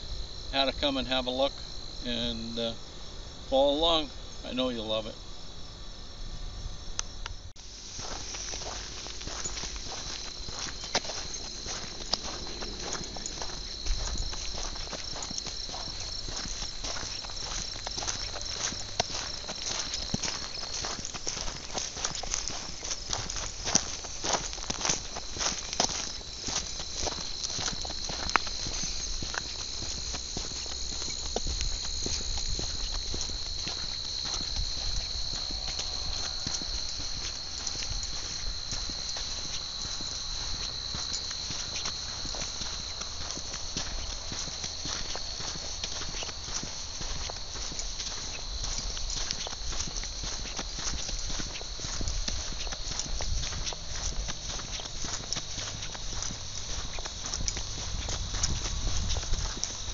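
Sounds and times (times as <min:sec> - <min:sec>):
crickets chirping: 0:00.0 - 0:59.9
footsteps on sandy dirt: 0:07.0 - 0:59.9.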